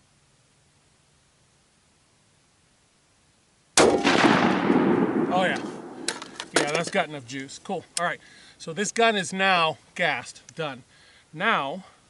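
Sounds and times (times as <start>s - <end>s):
rifle shot: 3.8s - 6.6s.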